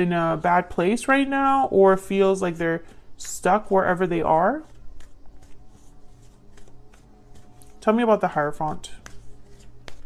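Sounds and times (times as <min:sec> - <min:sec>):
woman speaking: 0:00.0 - 0:04.7, 0:07.8 - 0:09.0
cards being shuffled: 0:04.4 - 0:07.9, 0:08.6 - 0:10.0.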